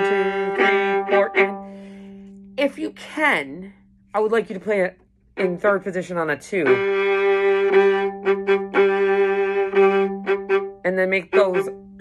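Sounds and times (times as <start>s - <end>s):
bowed viola solo: 0.0s - 2.4s, 6.5s - 12.0s.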